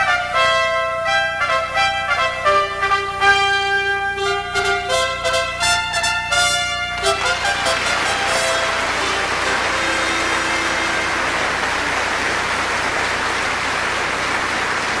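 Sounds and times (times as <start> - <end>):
brass fanfare: 0.0 - 15.0
audience applauding: 4.2 - 15.0.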